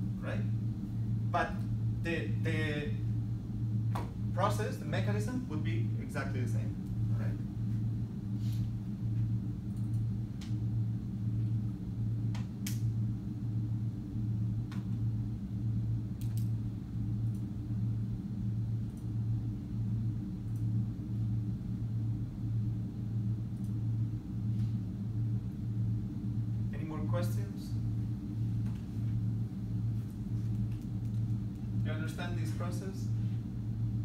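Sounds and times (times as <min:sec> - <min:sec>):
pulsing machinery hum: 0:00.0 - 0:34.0.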